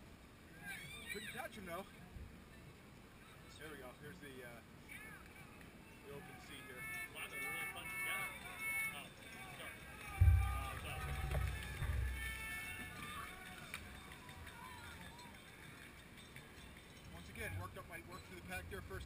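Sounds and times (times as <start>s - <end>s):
faint distant voices: 0.5s - 19.0s
low microphone rumble: 10.2s - 12.6s.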